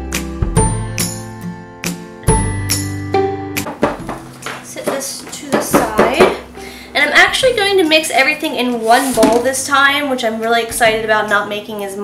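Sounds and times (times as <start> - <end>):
blender knocking on plastic bucket: 3.6 - 6.4.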